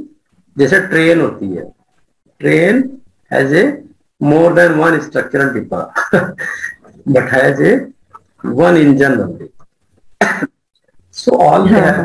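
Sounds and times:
man speaking: 0.0s - 9.8s, 11.1s - 12.0s
short cough: 10.2s - 10.6s.

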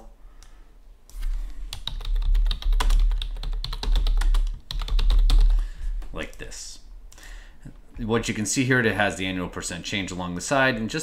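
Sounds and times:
typing on computer keyboard: 1.7s - 5.6s.

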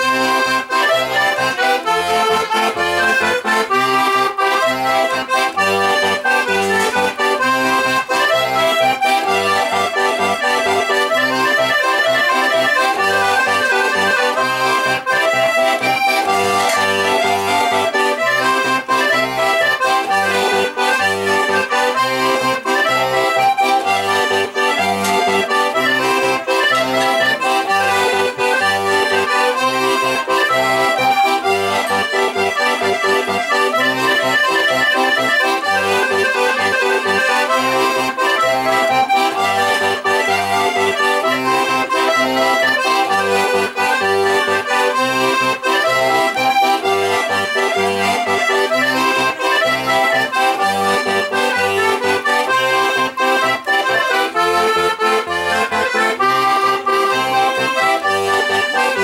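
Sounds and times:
button accordion folk tune: 0.0s - 59.0s.

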